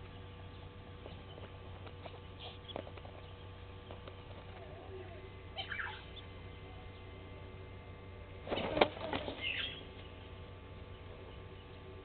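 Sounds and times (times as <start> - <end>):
bird chicks peeping: 0.0 - 7.2, 8.2 - 12.0
low electrical hum: 0.0 - 12.0.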